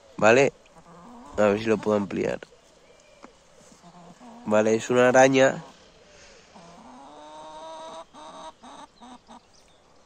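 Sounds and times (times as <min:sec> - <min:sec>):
chicken clucking: 0:00.7 - 0:09.6.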